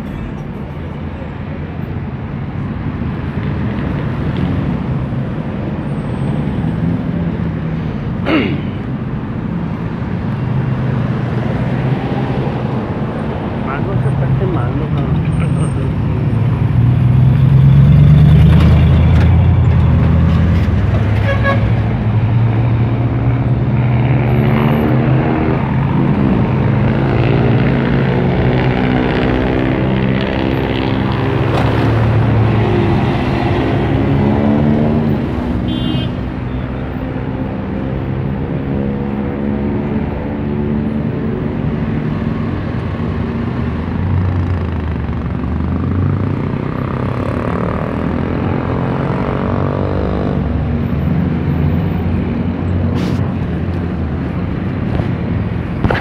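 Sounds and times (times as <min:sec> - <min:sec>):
vehicle engines in traffic: 0:00.0 - 0:56.0
vehicle accelerating: 0:10.5 - 0:35.6, 0:36.9 - 0:56.0.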